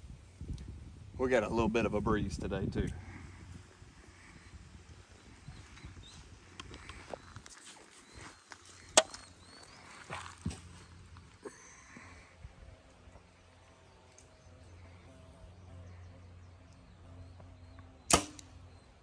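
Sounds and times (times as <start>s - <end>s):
wind rumble on microphone: 0.0s - 7.4s
faint bird chirps: 4.2s - 19.0s.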